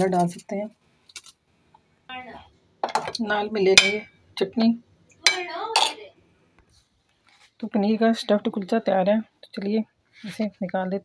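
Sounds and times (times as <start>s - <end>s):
utensil clinking on plate: 2.8s - 4.2s, 5.3s - 6.0s.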